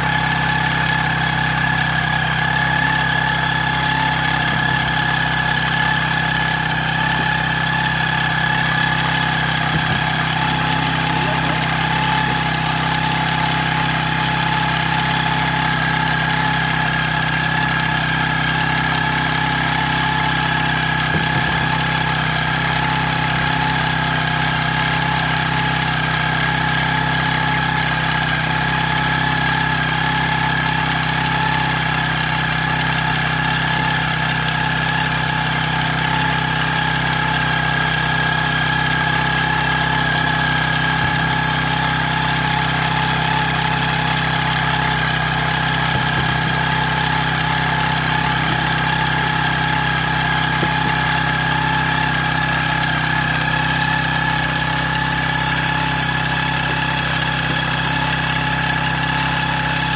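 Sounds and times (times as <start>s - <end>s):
sprayer engine humming and whining: 0.0s - 59.9s.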